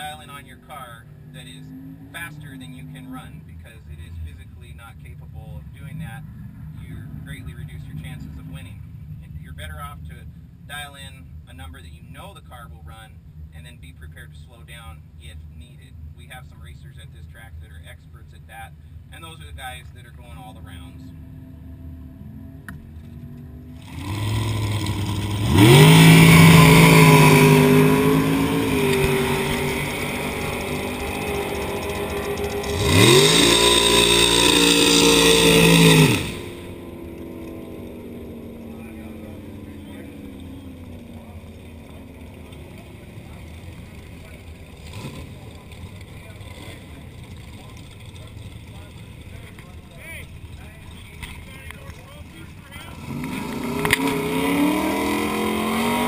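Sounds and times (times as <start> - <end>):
racing car engine revving: 0.0 - 10.1, 20.1 - 56.0
low engine rumble: 0.0 - 56.0.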